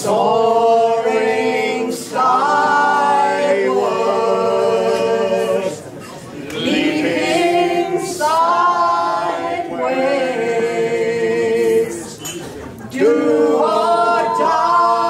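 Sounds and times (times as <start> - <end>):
group singing in harmony: 0.0 - 15.0.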